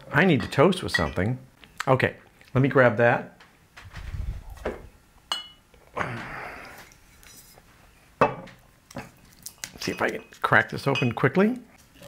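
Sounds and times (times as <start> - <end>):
glass bottles clinking: 0.4 - 1.3, 5.3 - 5.6, 8.2 - 9.2, 9.8 - 11.4
rustling: 3.7 - 5.0.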